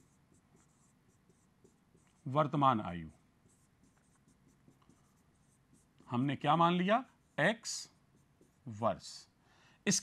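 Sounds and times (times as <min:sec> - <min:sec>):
pen scratching on a board: 0:00.0 - 0:02.4, 0:03.4 - 0:06.2.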